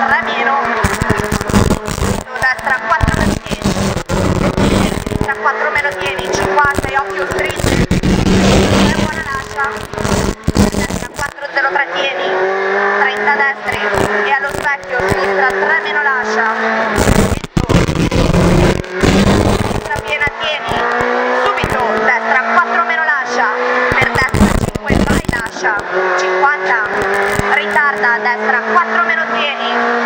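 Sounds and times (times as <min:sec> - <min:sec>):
car engine revving under hard driving: 0:00.0 - 0:30.0.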